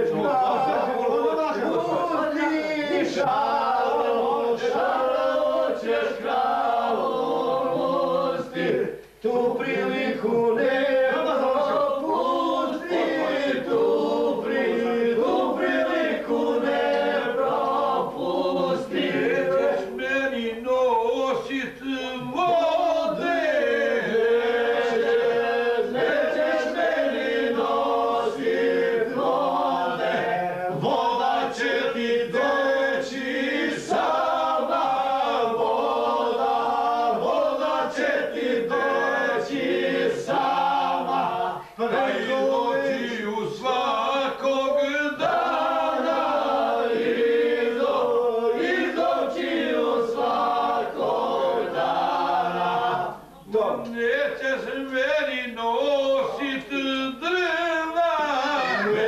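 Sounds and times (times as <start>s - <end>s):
men singing unaccompanied: 0.0s - 59.0s.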